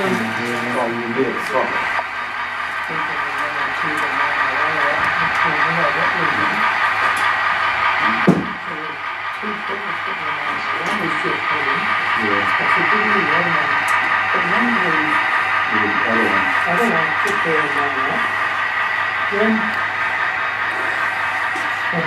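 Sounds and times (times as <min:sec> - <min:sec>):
people talking indistinctly: 0:00.0 - 0:18.5, 0:19.2 - 0:19.9, 0:20.7 - 0:22.0.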